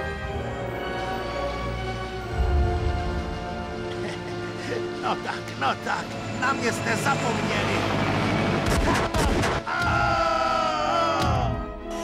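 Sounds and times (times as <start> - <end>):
men shouting: 8.7 - 12.0.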